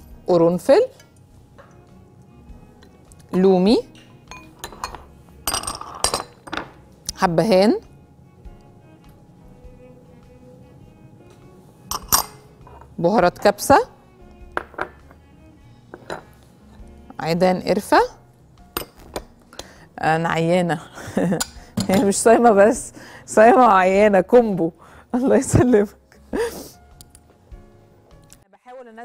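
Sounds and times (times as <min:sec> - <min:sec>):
glass bowl clinking: 0:04.0 - 0:06.8, 0:11.9 - 0:12.9, 0:15.9 - 0:16.4.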